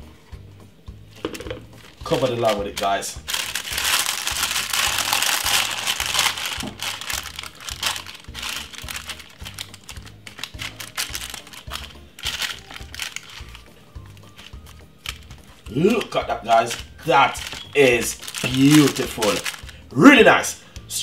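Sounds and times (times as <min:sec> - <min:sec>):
background music with low beat: 0:00.0 - 0:21.0
plastic glove and paper crinkling: 0:01.6 - 0:19.9.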